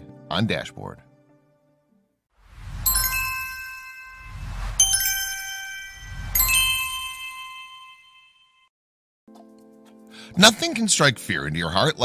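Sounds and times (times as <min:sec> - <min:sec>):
bright bell-like chime: 0:02.6 - 0:08.7.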